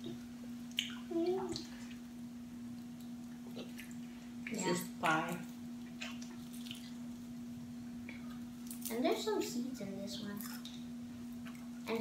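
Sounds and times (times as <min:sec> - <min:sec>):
steady low hum: 0:00.0 - 0:12.0
people chewing food: 0:02.7 - 0:08.9, 0:10.4 - 0:11.9.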